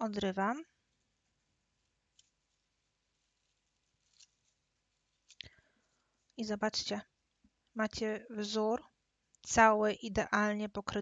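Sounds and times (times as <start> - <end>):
foil crinkle: 2.1 - 5.5.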